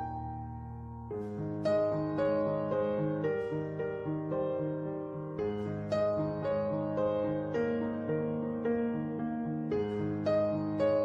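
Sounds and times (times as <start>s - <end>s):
slow calm piano music: 0.0s - 11.0s.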